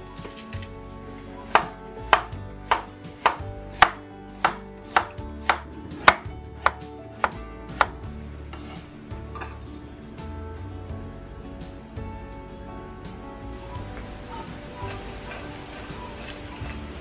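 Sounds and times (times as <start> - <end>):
knife slicing on wooden board: 1.5 - 7.9.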